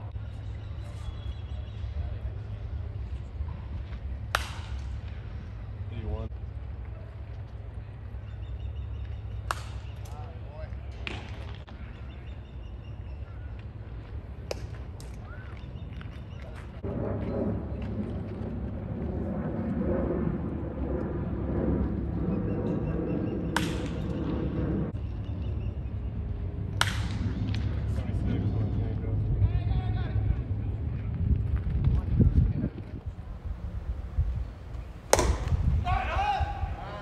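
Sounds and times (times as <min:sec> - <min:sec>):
baseball bat cracks: 0:04.3 - 0:05.1, 0:09.4 - 0:10.1, 0:23.6 - 0:24.2, 0:26.8 - 0:27.6, 0:34.8 - 0:36.8.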